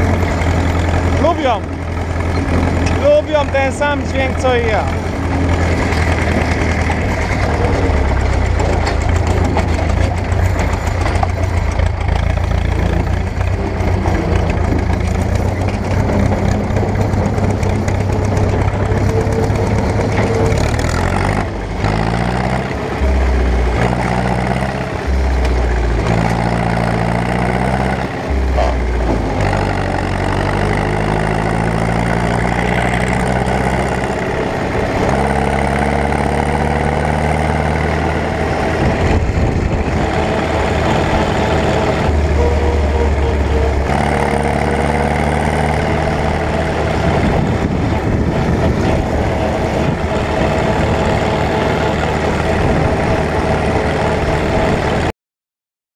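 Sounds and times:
tractor diesel engine running: 0.0 - 55.1.

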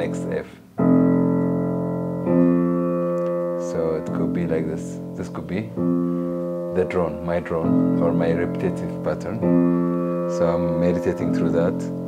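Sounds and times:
upright piano notes ringing: 0.0 - 12.0.

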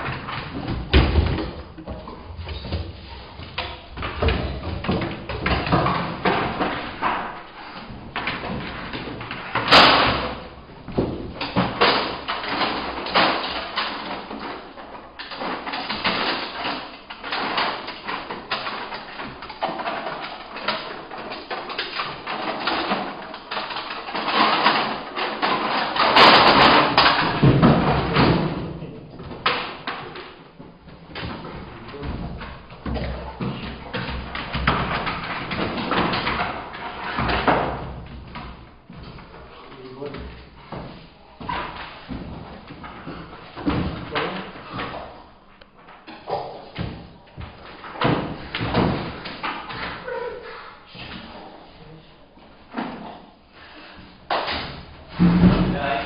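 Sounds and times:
thumps and scuffling: 0.0 - 56.0
person talking: 50.0 - 52.2.

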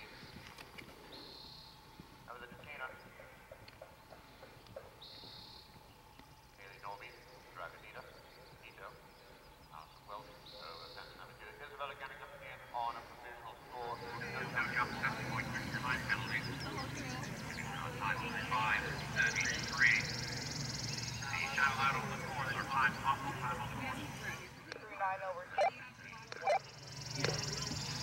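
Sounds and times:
people talking indistinctly: 9.7 - 20.2, 21.2 - 28.0.

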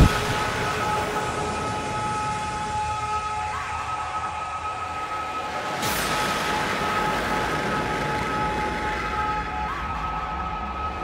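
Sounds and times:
noisy synth wash: 0.0 - 1.9.

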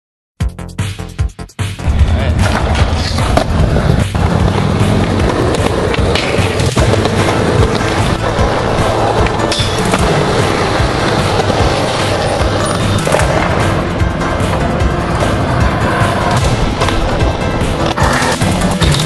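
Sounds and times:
loud music: 0.4 - 19.0
skateboard wheels rolling on concrete: 2.1 - 19.0.

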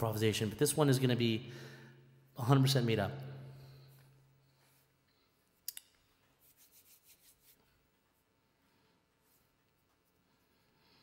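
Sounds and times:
hands rubbing together: 6.4 - 7.9.

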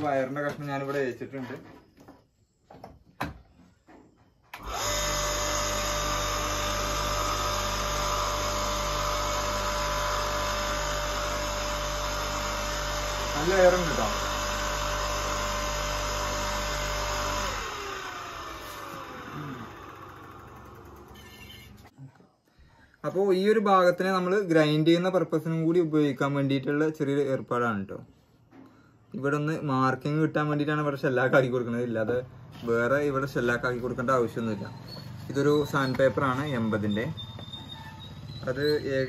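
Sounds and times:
electric blower motor humming: 4.6 - 21.9.

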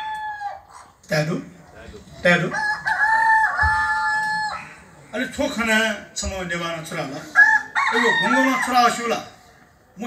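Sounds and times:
rooster crowing: 0.0 - 0.7, 2.5 - 4.7, 7.4 - 8.9.

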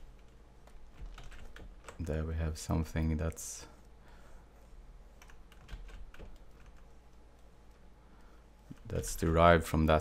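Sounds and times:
low steady hum: 0.0 - 10.0
computer keyboard clicks: 0.2 - 2.0, 5.2 - 6.8.

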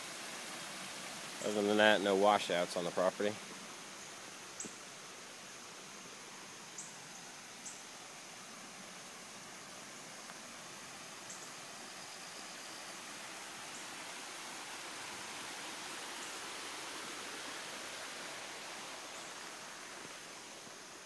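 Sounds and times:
runoff water rushing: 0.0 - 21.0.

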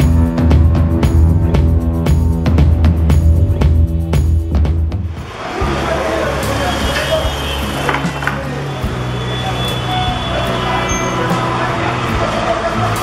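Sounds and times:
music intro with drum beats: 0.0 - 10.7
traffic noise: 5.1 - 13.0.

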